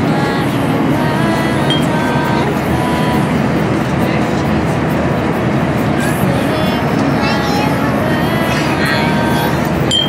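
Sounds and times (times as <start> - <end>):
airliner cabin drone: 0.0 - 10.0
faint voices: 0.0 - 10.0.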